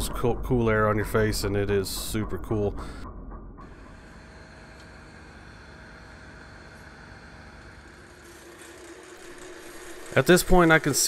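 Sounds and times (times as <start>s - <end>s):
wood lathe humming: 3.7s - 11.0s.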